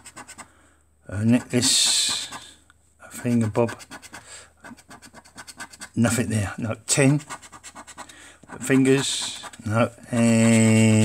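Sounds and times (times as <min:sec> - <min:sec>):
metal scratcher scraping card: 0:01.3 - 0:02.5, 0:06.9 - 0:11.0.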